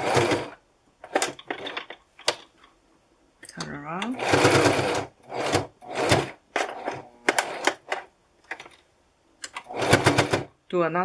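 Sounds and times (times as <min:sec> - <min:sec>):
sewing machine stitching: 0:00.0 - 0:01.9, 0:04.0 - 0:08.1, 0:09.5 - 0:10.5.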